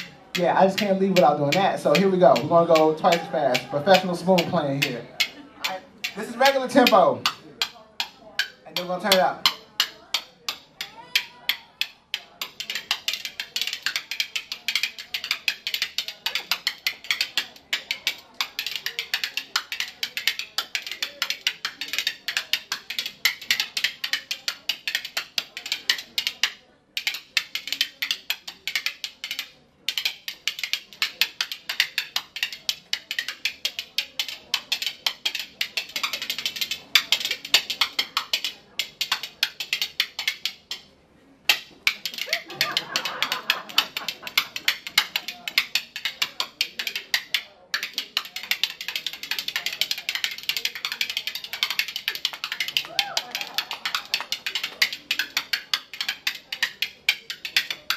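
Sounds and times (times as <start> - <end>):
spoons clicking rhythmically: 0.0 - 57.9.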